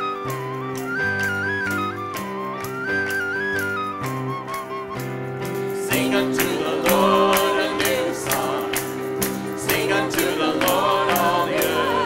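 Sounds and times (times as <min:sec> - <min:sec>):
worship band playing gospel: 0:00.0 - 0:12.0.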